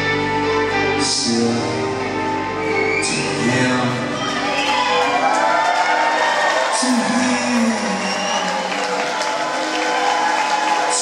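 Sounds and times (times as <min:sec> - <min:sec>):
live rock band playing: 0:00.0 - 0:05.3
crowd cheering and whooping: 0:02.5 - 0:11.0.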